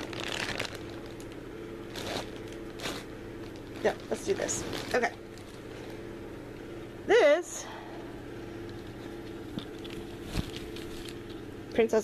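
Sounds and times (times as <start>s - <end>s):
bag rustling and crinkling: 0.0s - 6.0s, 8.8s - 11.2s
steady low hum: 0.0s - 12.0s.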